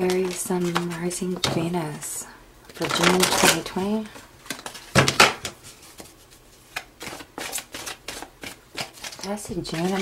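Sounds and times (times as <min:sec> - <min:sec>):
cards being shuffled: 0:00.0 - 0:01.5, 0:02.7 - 0:10.0.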